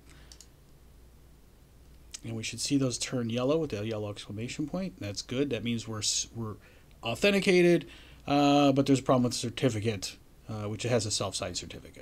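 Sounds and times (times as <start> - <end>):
faint computer mouse clicks: 0.0 - 0.6
low steady hum: 0.0 - 12.0.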